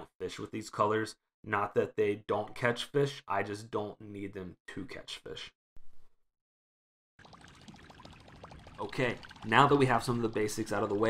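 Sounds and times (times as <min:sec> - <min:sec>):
water drops plinking: 0:07.2 - 0:11.0
water trickling and splashing: 0:07.2 - 0:11.0.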